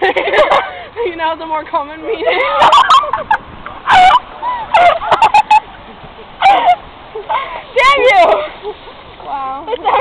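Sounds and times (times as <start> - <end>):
people laughing: 0.0 - 1.0, 2.0 - 7.6, 9.7 - 10.0.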